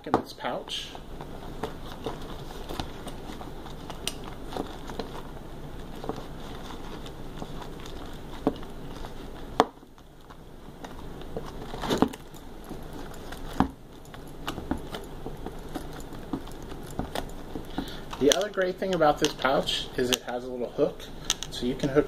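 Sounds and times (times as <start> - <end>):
cloth pouch rustling: 1.0 - 19.7.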